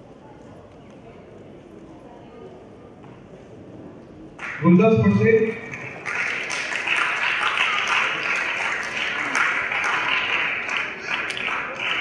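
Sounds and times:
faint indistinct voices: 0.0s - 4.5s, 5.5s - 12.0s
low hall ambience: 0.0s - 12.0s.

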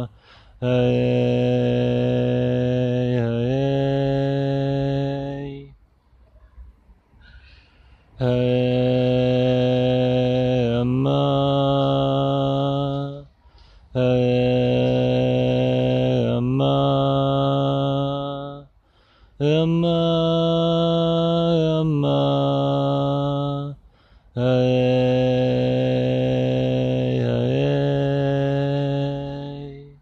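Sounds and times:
man chanting long held notes: 24.4s - 30.0s.

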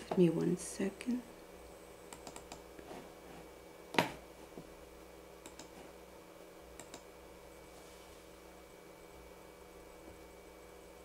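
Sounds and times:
faint room hum: 0.0s - 11.0s.

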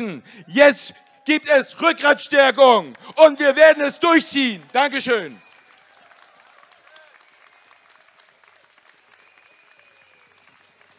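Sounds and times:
faint scattered applause: 2.6s - 10.9s.

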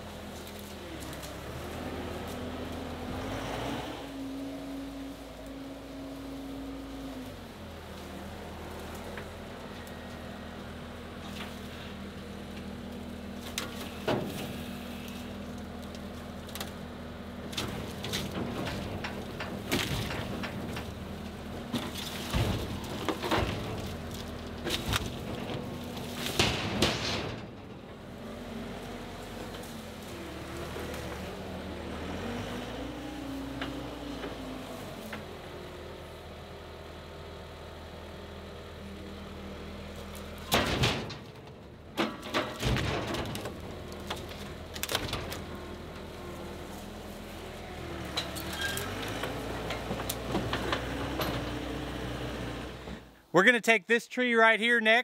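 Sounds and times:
diesel engine running: 0.0s - 53.4s.

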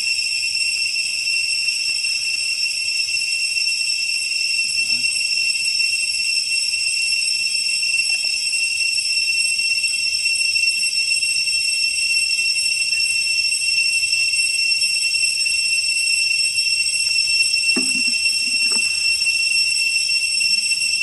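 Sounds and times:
insects droning: 0.0s - 21.0s.

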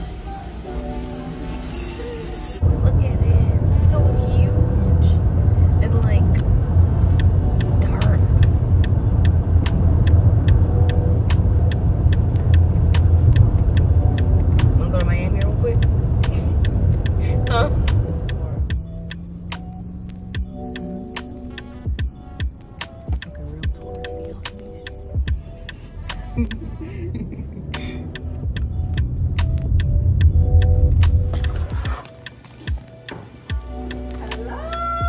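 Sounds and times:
car road rumble: 0.0s - 35.0s
music with ticking beat: 1.6s - 35.0s.

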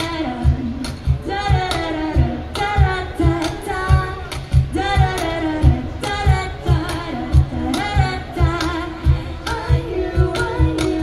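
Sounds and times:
low percussion beat: 0.0s - 11.0s
woman singing with vibrato: 0.0s - 11.0s.

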